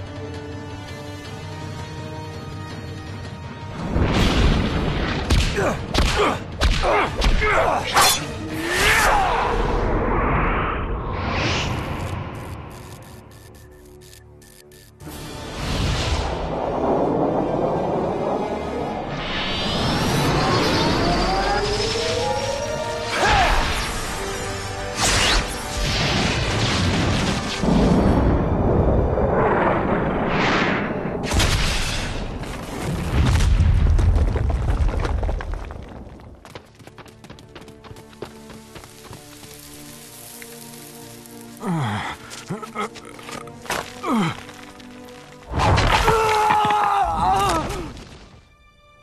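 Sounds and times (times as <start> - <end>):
film score music: 0.0 - 33.5, 36.3 - 49.0
rising sweep: 15.6 - 24.4.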